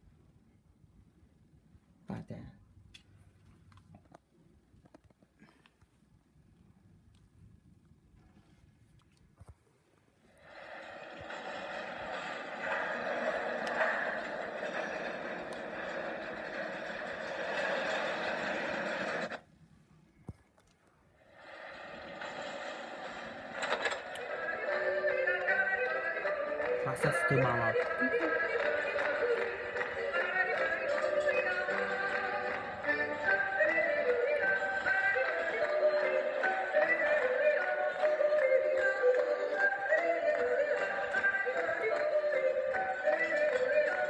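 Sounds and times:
dense wash of noise: 0:10.4 - 0:19.4
music: 0:10.4 - 0:19.4, 0:21.4 - 0:44.0
voice-like sound: 0:26.8 - 0:28.2.

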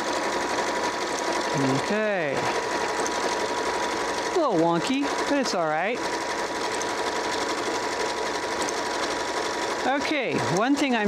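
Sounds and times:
rapid needle clatter: 0:00.0 - 0:11.0
sewing machine motor whine: 0:00.0 - 0:11.0.

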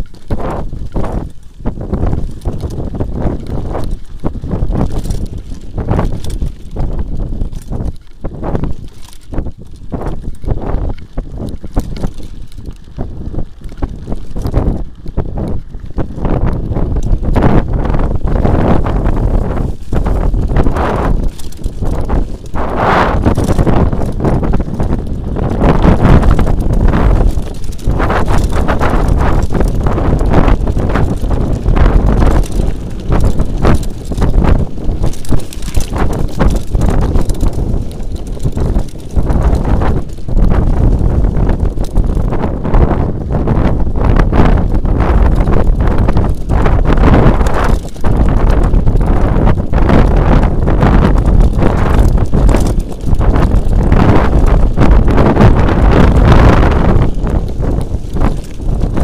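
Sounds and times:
bike rattling and knocking: 0:00.0 - 0:59.0
tyres and wind rumble: 0:00.0 - 0:59.0.

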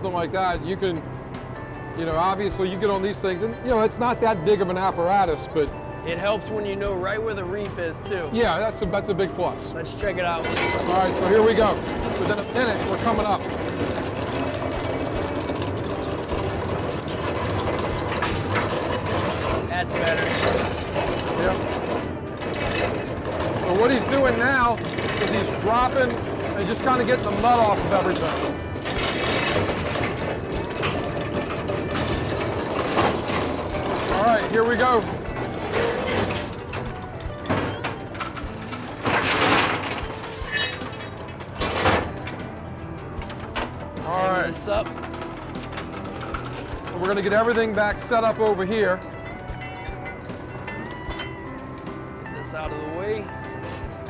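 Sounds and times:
dredge winch running: 0:00.0 - 0:54.0
oysters and shell clattering: 0:10.4 - 0:52.6.

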